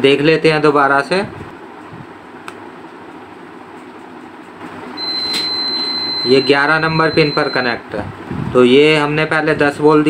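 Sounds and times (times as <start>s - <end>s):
multimeter continuity beep: 5.0s - 7.8s.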